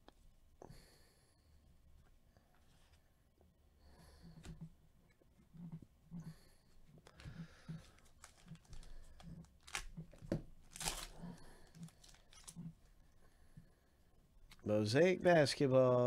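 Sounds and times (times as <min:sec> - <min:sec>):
foil wrapper crinkling and tearing: 0:07.8 - 0:12.6.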